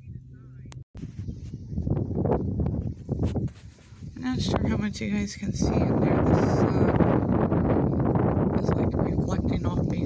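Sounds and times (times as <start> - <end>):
rumbling and rustling on microphone: 0.0 - 10.0.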